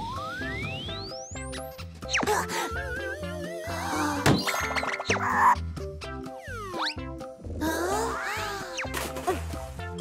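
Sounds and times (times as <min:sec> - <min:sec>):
cheerful cartoon music: 0:00.0 - 0:10.0.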